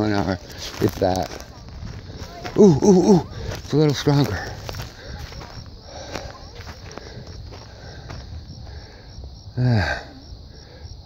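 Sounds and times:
footsteps on gravel: 0.0s - 8.8s.

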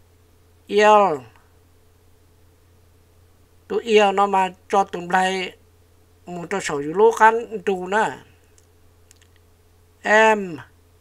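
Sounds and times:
steady low hum: 0.0s - 11.0s
person speaking: 0.7s - 1.4s, 3.7s - 5.6s, 6.2s - 9.4s, 10.0s - 10.8s
faint short clicks: 8.5s - 9.5s.

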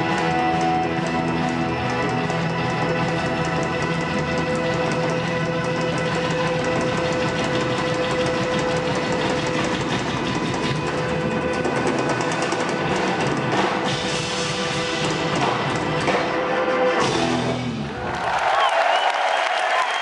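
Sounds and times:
fast drumming: 0.0s - 16.4s
blues-rock band playing: 0.0s - 17.9s.

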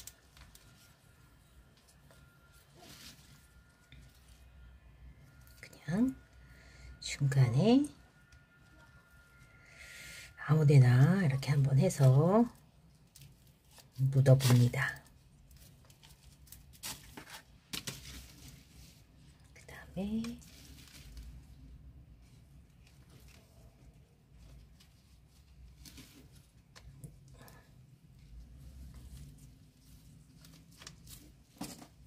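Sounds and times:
soft clicks and rustles of plant: 0.0s - 4.5s, 11.4s - 32.0s.

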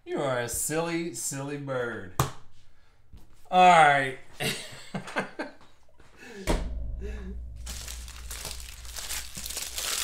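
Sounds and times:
card pack wrapper crinkling: 7.7s - 10.0s.

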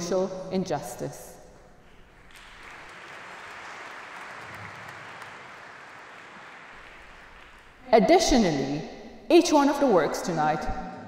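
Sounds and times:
audience applauding: 2.1s - 7.8s.

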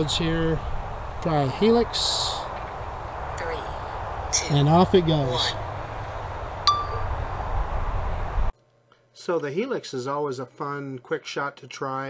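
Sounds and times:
wind rumble on microphone: 0.0s - 8.5s.

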